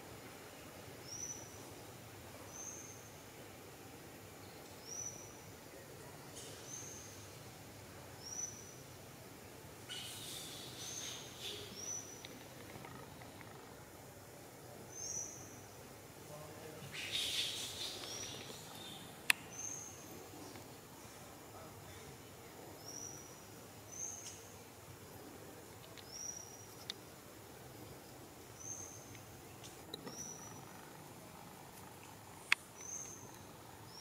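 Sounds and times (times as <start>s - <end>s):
forest background: 0.0s - 34.0s.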